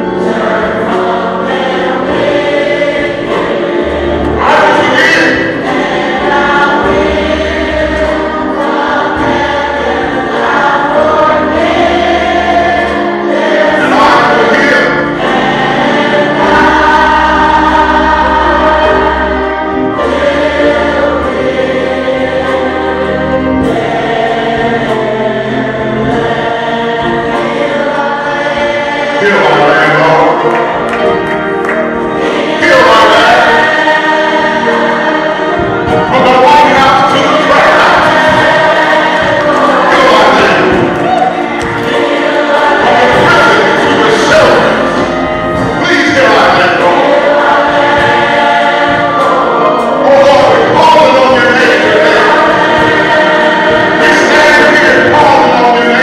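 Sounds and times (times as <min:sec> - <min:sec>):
gospel choir singing: 0:00.0 - 0:56.0
instrumental accompaniment: 0:00.0 - 0:56.0
low bass notes: 0:34.3 - 0:56.0.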